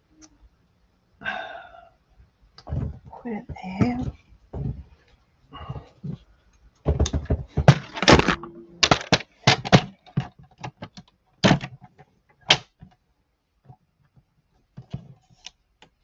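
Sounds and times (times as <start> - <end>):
plastic paper trimmer knocks and clatters: 6.9 - 11.9.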